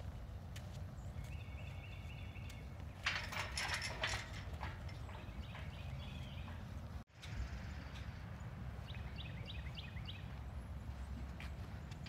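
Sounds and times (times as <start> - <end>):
mule hoofbeats on dirt: 0.0 - 12.0
clattering metal rattle: 3.0 - 6.7.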